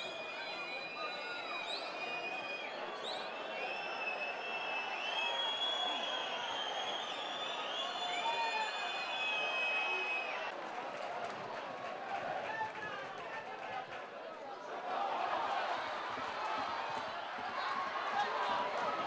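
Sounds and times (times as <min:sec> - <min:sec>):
fans whistling: 0:00.2 - 0:10.5
scattered claps: 0:10.5 - 0:14.3, 0:14.9 - 0:19.0.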